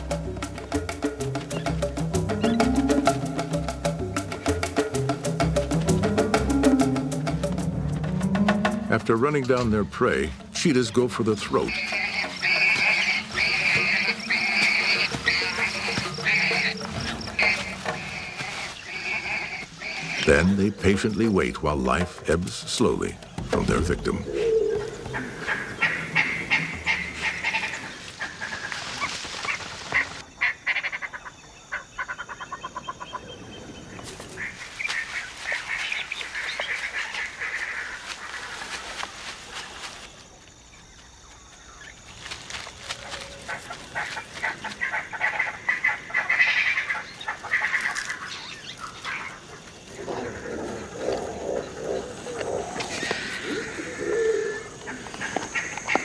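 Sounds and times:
animal chattering calls: 11.5 - 21.3, 23.8 - 33.4, 43.0 - 56.0.

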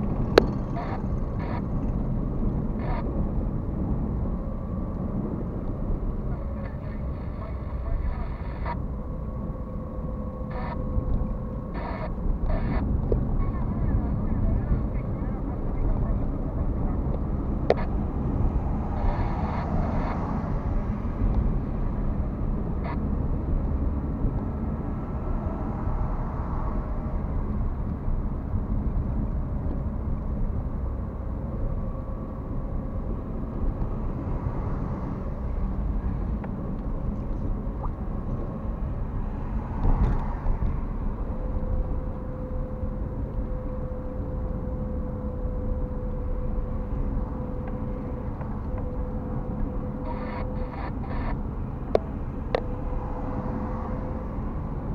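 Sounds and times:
car cabin road rumble: 0.0 - 54.9.

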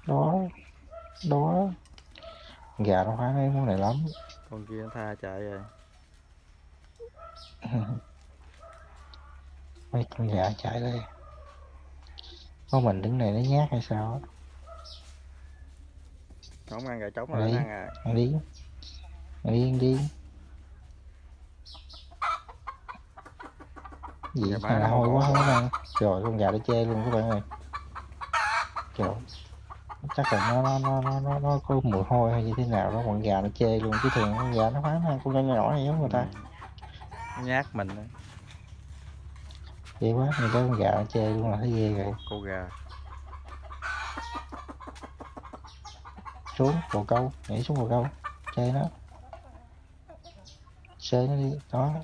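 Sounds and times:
chickens clucking: 0.0 - 52.0.

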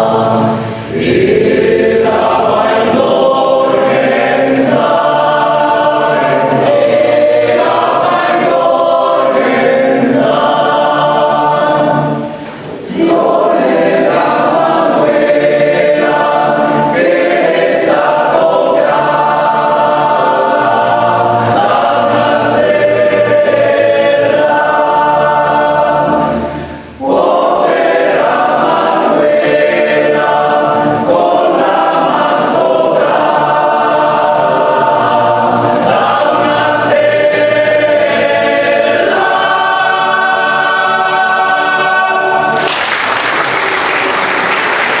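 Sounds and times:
men's choir singing: 0.0 - 42.7
applause: 42.6 - 45.0.

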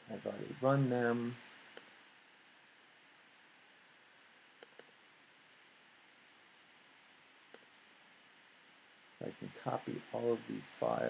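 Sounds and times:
computer mouse clicks: 4.6 - 5.0.

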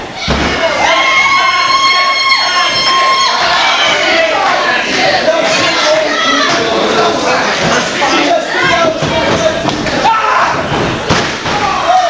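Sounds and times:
voices shouting: 0.1 - 12.0.

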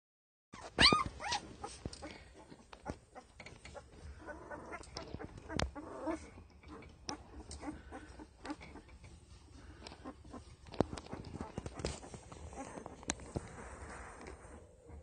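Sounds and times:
puppies squealing: 0.6 - 9.0
puppies grunting: 0.6 - 15.0
soft rustling and clicks: 0.6 - 15.0.

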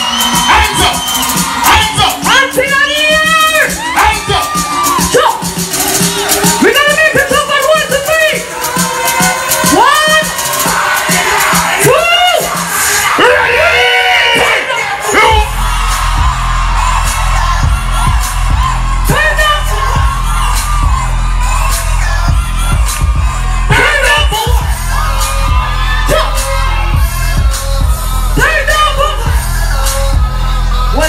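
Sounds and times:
amplified vocals: 0.0 - 31.0
crowd noise: 0.0 - 31.0
dancehall music through a pa: 0.0 - 31.0
heavy bass beat: 0.0 - 31.0.

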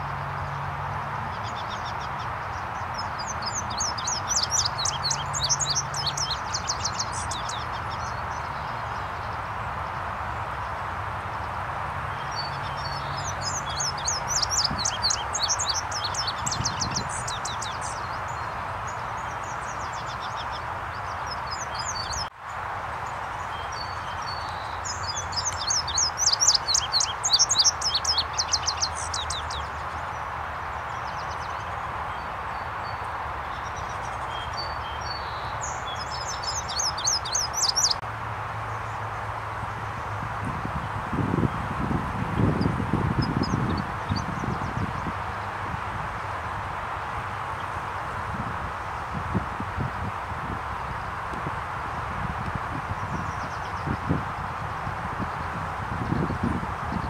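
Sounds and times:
bird singing: 1.3 - 9.5, 12.1 - 22.3, 23.3 - 38.0
bird singing high sweeping notes: 3.0 - 8.7.

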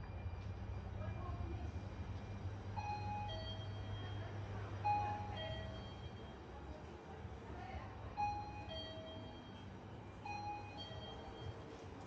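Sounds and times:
low hum of indoor mall: 0.0 - 12.0.

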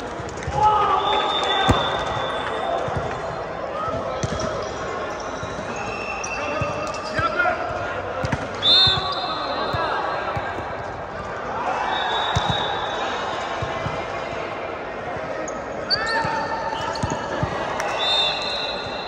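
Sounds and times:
players calling out: 0.0 - 14.5
sneakers squeaking on court: 15.3 - 17.5.

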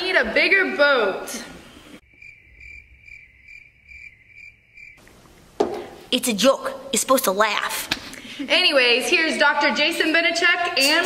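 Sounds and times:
cricket chirping: 2.0 - 5.0.

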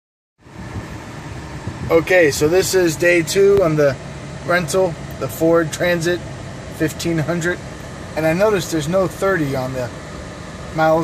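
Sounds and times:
van engine idling: 0.4 - 11.0.

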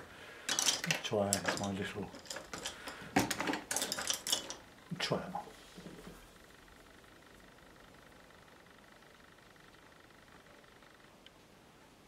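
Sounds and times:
small tools clicking and clattering: 0.4 - 4.7.

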